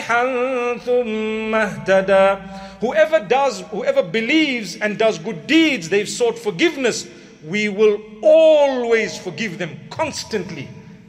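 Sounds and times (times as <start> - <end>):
man chanting melodically: 0.0 - 10.9
person speaking: 0.0 - 11.0.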